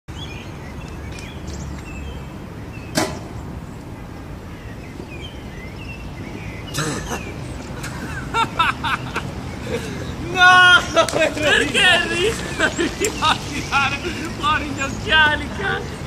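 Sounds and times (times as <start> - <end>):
distant traffic rumble: 0.1 - 16.0
small birds chirping: 0.1 - 16.0
sharp snap: 2.9 - 3.3.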